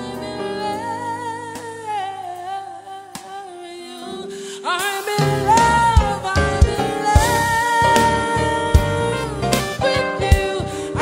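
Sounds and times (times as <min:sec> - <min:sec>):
soft keyboard chords: 0:00.0 - 0:11.0.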